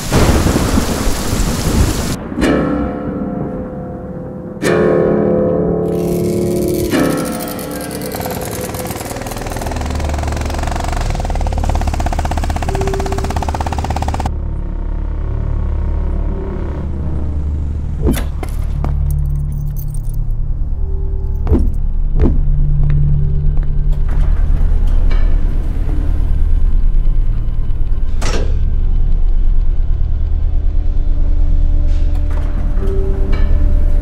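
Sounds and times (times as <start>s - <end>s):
dark film underscore: 0.0s - 34.0s
low rumbling drone: 5.8s - 34.0s.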